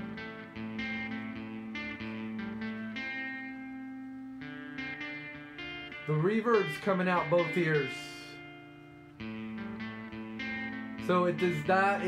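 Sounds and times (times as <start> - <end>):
guitar notes with spring reverb: 0.0 - 12.0.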